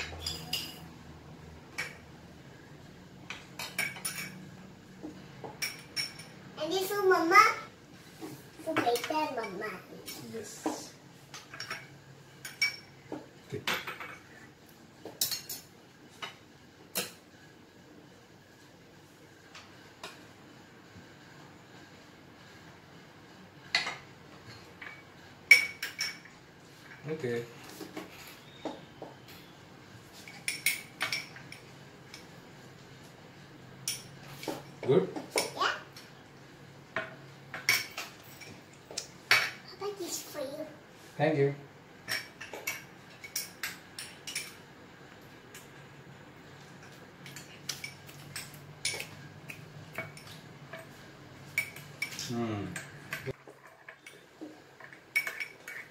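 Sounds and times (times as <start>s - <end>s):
spoon clinking against bowls: 0.0s - 0.9s, 11.4s - 13.0s, 24.8s - 26.3s, 47.2s - 55.9s.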